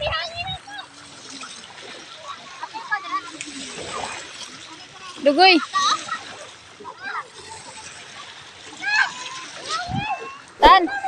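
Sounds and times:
sea water splashing: 0.0s - 11.0s
children's high-pitched calls: 8.7s - 11.0s.

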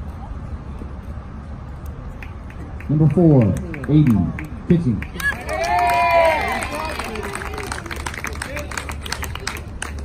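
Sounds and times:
people clapping: 2.1s - 10.0s
whooping cheer: 5.2s - 7.8s.

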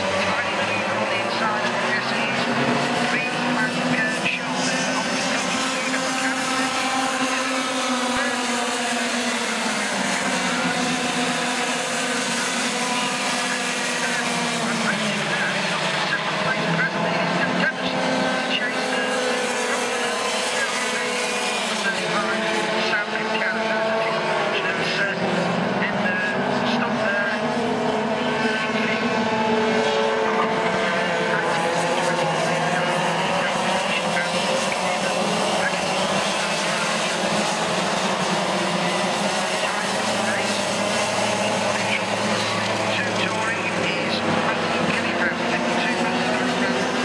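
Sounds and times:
racing kart engines buzzing: 0.0s - 47.0s.

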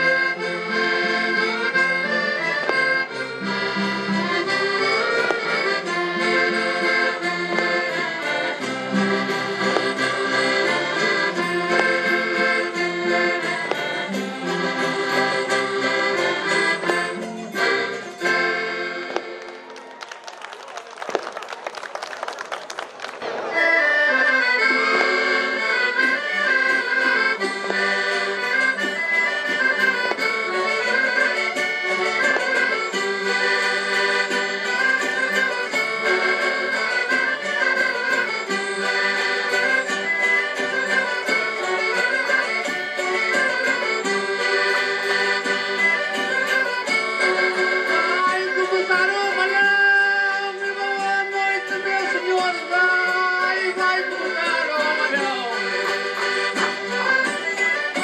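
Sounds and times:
folk band with accordions: 0.0s - 58.0s.

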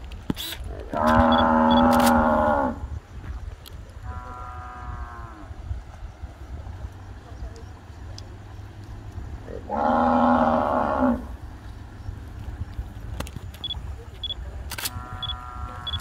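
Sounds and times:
cow mooing: 0.9s - 2.8s, 4.1s - 5.5s, 9.5s - 11.3s, 14.9s - 16.0s.

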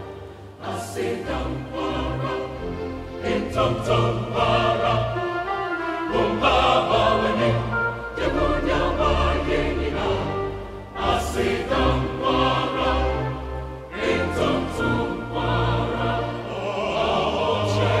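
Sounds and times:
mixed choir singing gospel: 0.0s - 18.0s.

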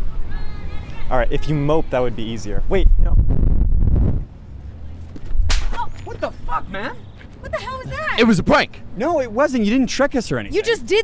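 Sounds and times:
low rumble: 2.8s - 5.6s
sudden sharp crack: 5.4s - 5.9s.

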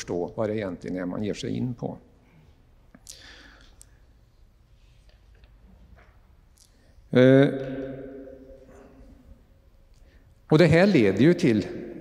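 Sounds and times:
short breath: 2.3s - 4.0s.

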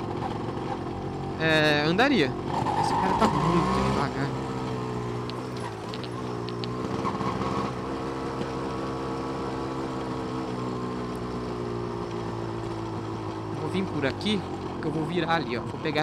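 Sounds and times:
two-stroke motorcycle engine: 0.0s - 16.0s.

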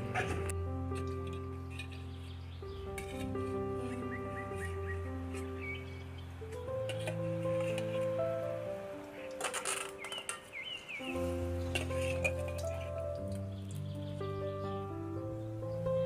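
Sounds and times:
slow background music: 0.0s - 16.0s
scraping clatter: 6.9s - 8.2s, 9.3s - 10.5s, 11.7s - 13.0s.

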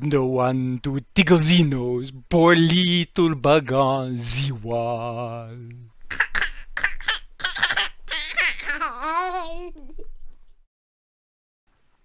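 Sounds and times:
children laughing: 6.1s - 10.3s.

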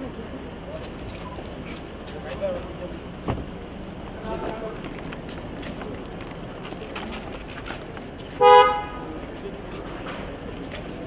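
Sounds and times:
crowd noise: 0.0s - 11.0s
street noise: 0.0s - 11.0s
car horn toot: 8.4s - 9.1s.

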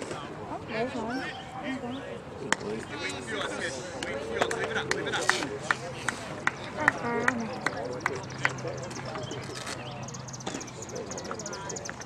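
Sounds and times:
indistinct voices: 0.2s - 12.0s.

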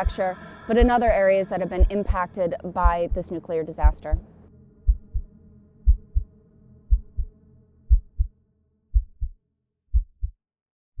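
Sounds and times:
heartbeat thuds: 0.0s - 2.2s, 2.8s - 4.2s, 4.9s - 6.3s, 6.9s - 7.3s, 7.9s - 8.3s, 8.9s - 10.4s
faint low drone: 0.0s - 9.4s.

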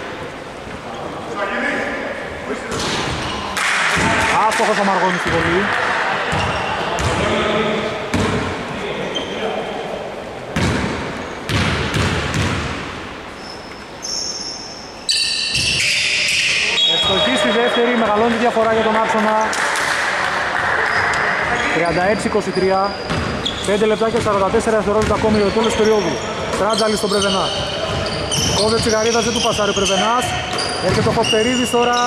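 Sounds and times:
echoing voices: 0.0s - 11.3s, 15.3s - 32.0s
basketball bouncing on wooden floor: 10.6s - 12.9s, 23.1s - 23.4s, 24.1s - 25.4s, 30.2s - 31.2s
high-pitched squeaks: 13.4s - 17.5s, 25.3s - 32.0s.

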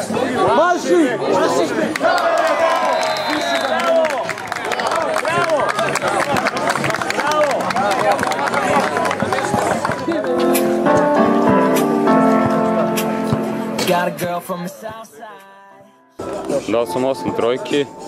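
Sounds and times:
crowd talking and calling out: 0.0s - 18.0s
background music: 7.5s - 18.0s.

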